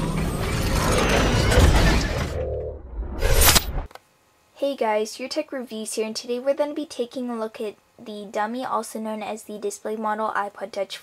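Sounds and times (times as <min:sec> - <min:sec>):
dense mechanical texture: 0:00.0 - 0:03.9.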